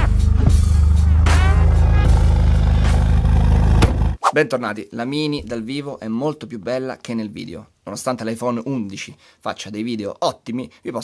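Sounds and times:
car engine running: 0:00.0 - 0:04.2
background music: 0:00.0 - 0:04.3.

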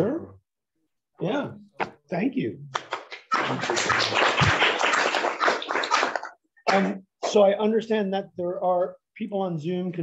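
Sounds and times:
audience applauding: 0:02.8 - 0:06.9.

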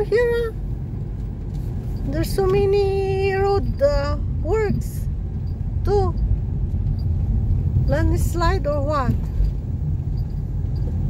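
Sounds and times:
car engine rumble: 0:00.0 - 0:11.0
tyres on rough road: 0:00.0 - 0:11.0.

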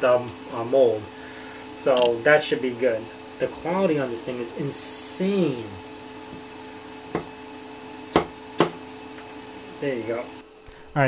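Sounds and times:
printer fan humming: 0:00.0 - 0:11.0.

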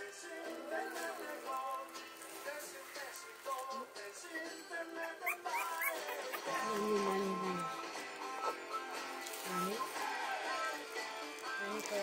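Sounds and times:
background music: 0:00.0 - 0:12.0
puppy squeaking: 0:05.0 - 0:07.7, 0:08.3 - 0:08.8.

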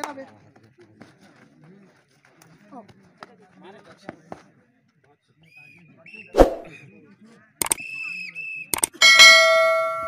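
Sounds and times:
bright bell ding: 0:09.0 - 0:10.0.

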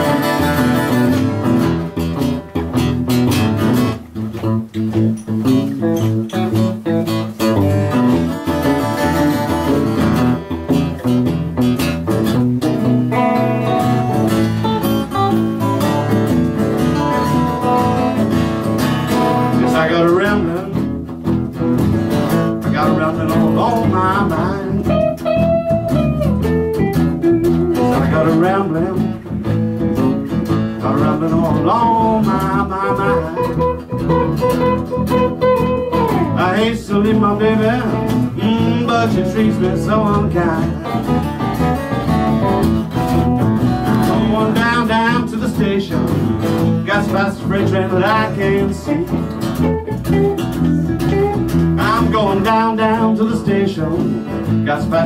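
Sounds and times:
acoustic blues guitar: 0:00.0 - 0:55.0.

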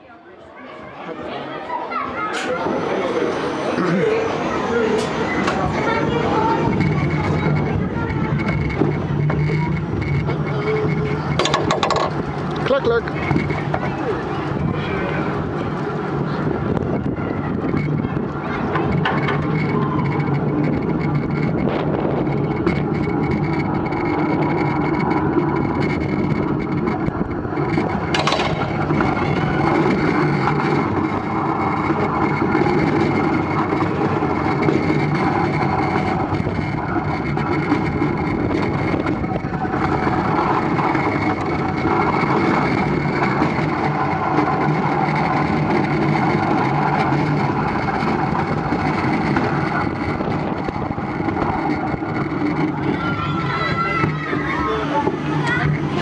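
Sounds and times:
coaster wheels rumbling on track: 0:00.0 - 0:56.0.

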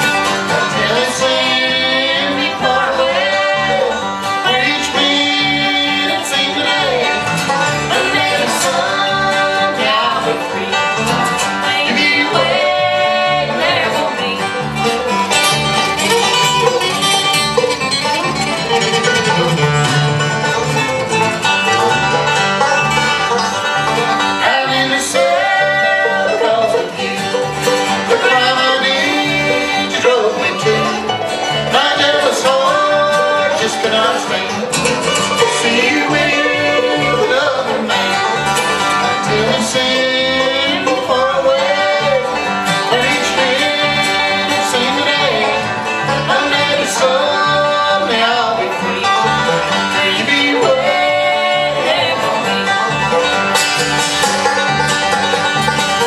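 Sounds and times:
acoustic guitar picking: 0:00.0 - 0:56.0
banjo picking: 0:00.0 - 0:56.0
bass line: 0:00.0 - 0:56.0.

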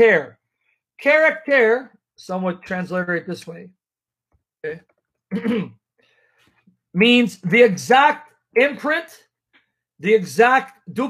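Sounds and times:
man speaking: 0:00.0 - 0:00.4, 0:01.0 - 0:03.8, 0:04.6 - 0:05.7, 0:06.9 - 0:09.4, 0:10.0 - 0:11.0
man clearing throat: 0:05.3 - 0:05.8.

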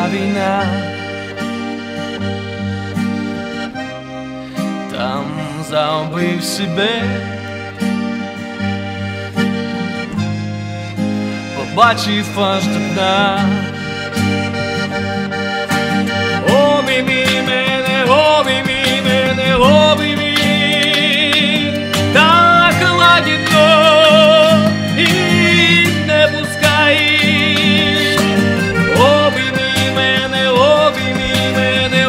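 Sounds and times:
person singing: 0:00.0 - 0:01.0, 0:16.3 - 0:32.0
acoustic guitar: 0:00.0 - 0:32.0
button accordion chords: 0:00.0 - 0:32.0.

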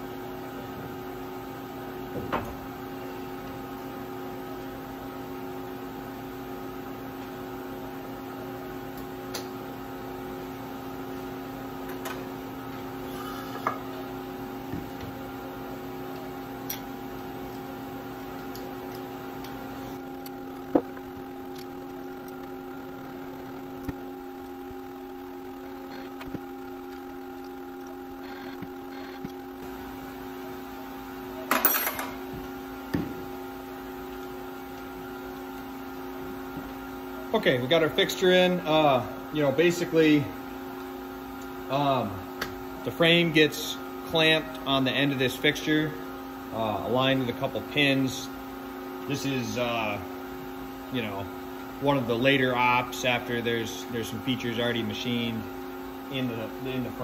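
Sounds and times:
machinery hum with steady tones: 0:00.0 - 0:57.0.

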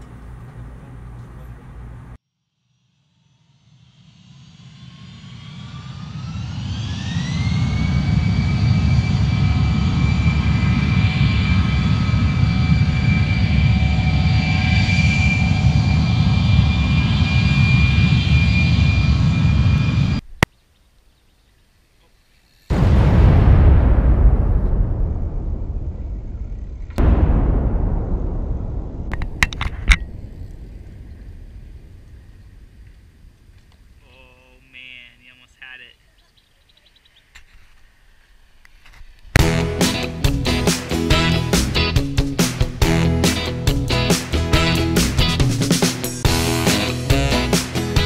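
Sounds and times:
jet engine whine: 0:03.0 - 0:20.3, 0:23.9 - 0:34.0
heavy low rumble: 0:06.5 - 0:20.3, 0:22.7 - 0:35.1, 0:39.4 - 0:48.0.

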